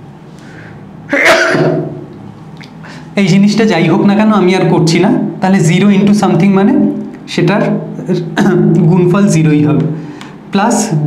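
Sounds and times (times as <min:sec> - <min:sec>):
faint breath in: 0:00.4 - 0:00.9
man sneezing: 0:01.1 - 0:02.0.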